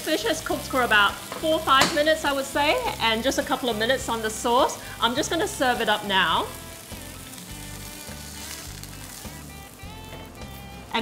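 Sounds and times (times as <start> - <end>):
fish sizzling in frying pan: 0.0 - 11.0
music with repeating bass line: 8.6 - 10.9.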